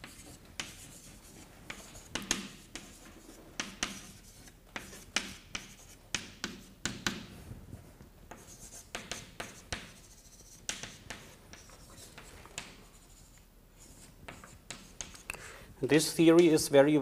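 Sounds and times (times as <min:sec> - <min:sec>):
chalk writing on blackboard: 0:00.0 - 0:07.3, 0:08.3 - 0:15.3.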